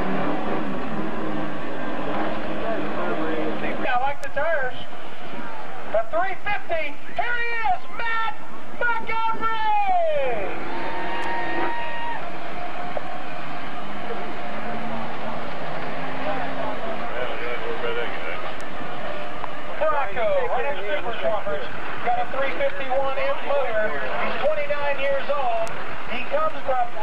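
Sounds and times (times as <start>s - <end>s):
truck engine running: 0.0s - 7.2s, 8.4s - 27.0s
people shouting: 7.2s - 15.0s.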